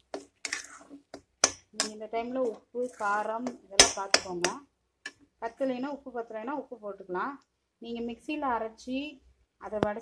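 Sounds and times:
metal spatula knocking on pan: 1.2s - 2.0s, 3.4s - 4.6s
person talking: 1.8s - 4.7s.

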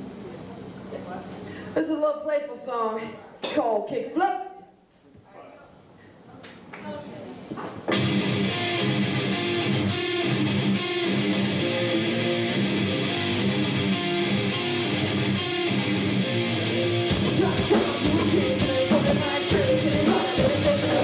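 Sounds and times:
electric guitar: 7.9s - 21.0s
live rock band playing: 7.9s - 21.0s.

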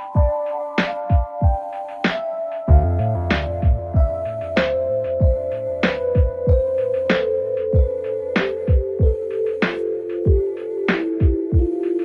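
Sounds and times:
deep kick drums: 2.7s - 4.2s.

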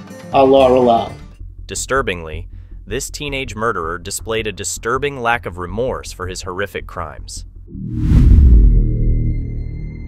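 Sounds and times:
deep cinematic boom: 1.3s - 10.0s
low dark drone: 1.3s - 10.0s.

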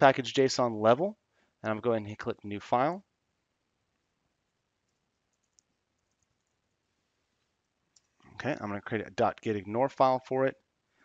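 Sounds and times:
computer keyboard clicks: 4.9s - 6.6s.

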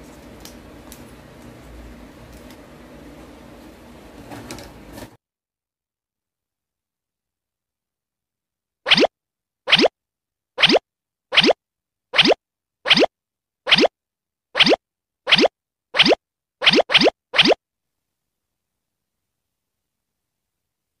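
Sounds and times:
cartoon pop bloop: 8.9s - 9.1s, 9.7s - 9.9s, 10.6s - 11.6s, 12.2s - 13.1s, 13.7s - 13.9s, 14.6s - 17.6s.

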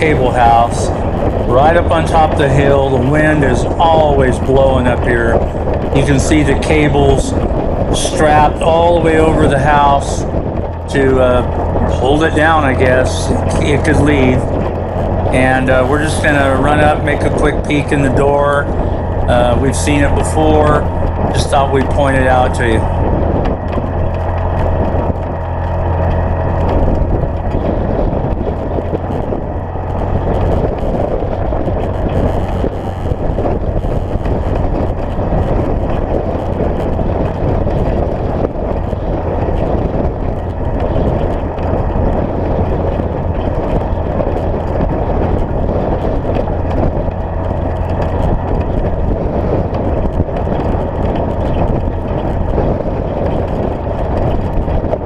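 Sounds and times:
utv engine drone: 0.0s - 55.0s.

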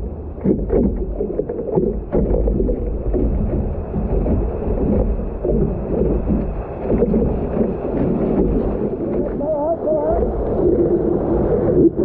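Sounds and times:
seawater splashing against surfboard: 0.0s - 12.0s.

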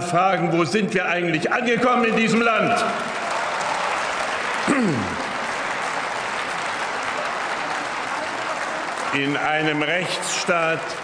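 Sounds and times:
group clapping: 2.2s - 11.0s.

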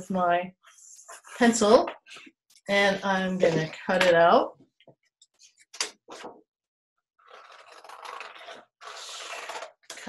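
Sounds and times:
scissors cutting paper: 7.2s - 10.0s.

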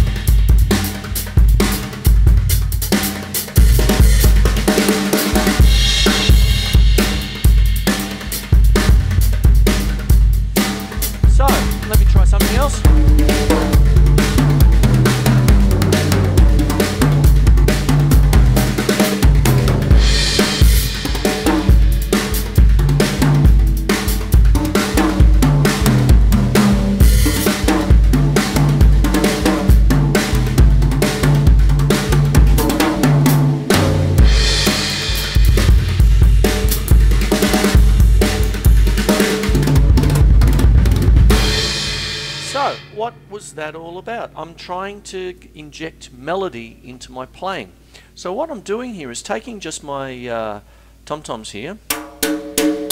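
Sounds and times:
drum kit rock beat: 0.0s - 44.5s, 51.8s - 52.9s
tom-toms melodic patterns: 0.0s - 45.0s
cymbal crashes: 41.2s - 43.4s.

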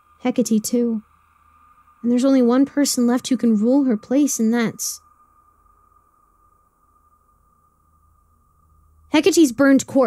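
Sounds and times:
faint steady high tone: 0.0s - 10.0s
low hum: 0.0s - 10.0s.

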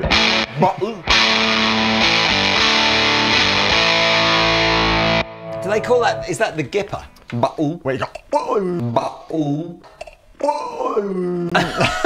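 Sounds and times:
man talking: 0.5s - 1.1s, 5.6s - 11.6s.

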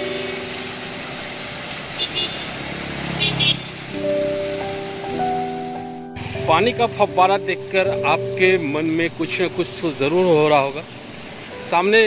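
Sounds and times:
fountain jets splashing: 0.0s - 12.0s
road traffic hum: 0.0s - 12.0s.

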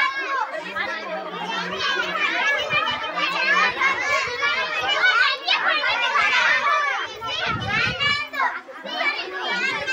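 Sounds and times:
children chattering and calling out: 0.0s - 9.9s.

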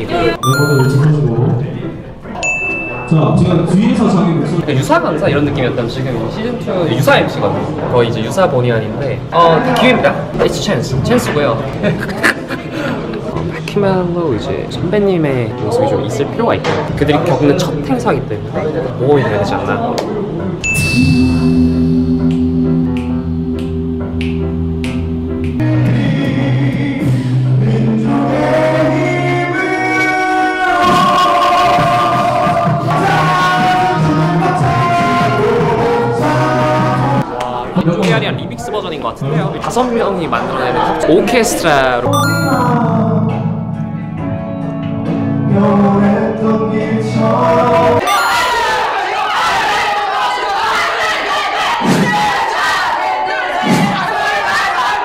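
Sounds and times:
choir-like background music: 20.1s - 37.4s
a cappella group singing: 25.5s - 37.4s, 45.4s - 48.0s.

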